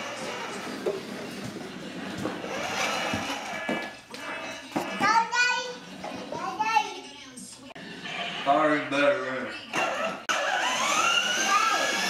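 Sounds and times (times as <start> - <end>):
toy motorcycle motor whine: 0.0 - 0.8, 2.4 - 4.4, 9.7 - 12.0.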